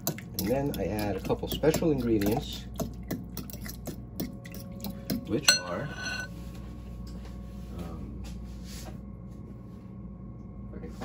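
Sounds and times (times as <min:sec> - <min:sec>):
steady low hum: 0:00.0 - 0:11.0
spoon knocking glass bowl: 0:05.5 - 0:06.3.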